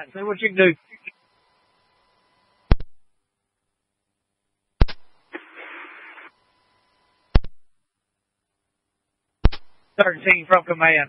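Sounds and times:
radio static hiss: 0.0 - 3.0, 4.8 - 7.7, 9.4 - 11.0.

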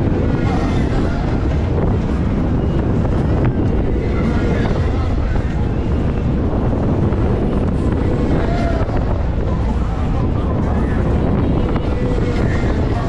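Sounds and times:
faint voices: 0.0 - 13.0
fairground noise: 0.0 - 13.0
wind buffeting microphone: 0.0 - 13.0.

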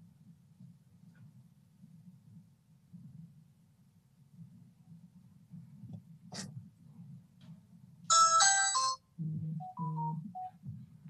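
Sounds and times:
phone ringtone melody: 8.1 - 9.0, 9.6 - 10.5.

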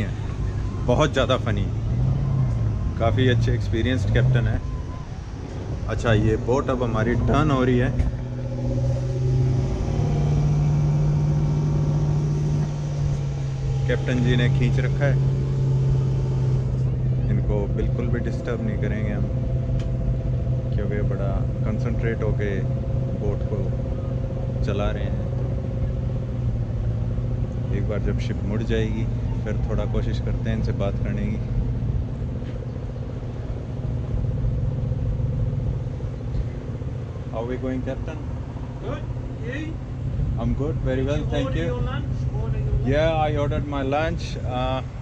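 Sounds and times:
boat engine droning: 0.0 - 45.0.

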